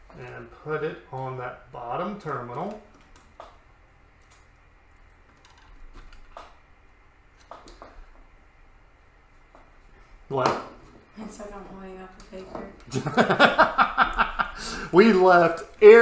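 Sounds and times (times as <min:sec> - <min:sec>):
small clicks and taps of wire: 0:02.2 - 0:03.6.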